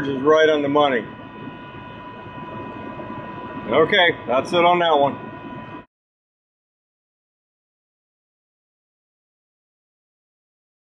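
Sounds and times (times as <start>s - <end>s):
heat pump rushing with high whine: 0.0s - 5.9s.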